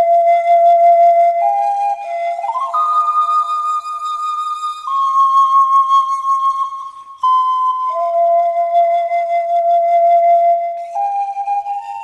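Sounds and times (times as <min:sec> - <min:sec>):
solo panpipe: 0:00.0 - 0:12.0.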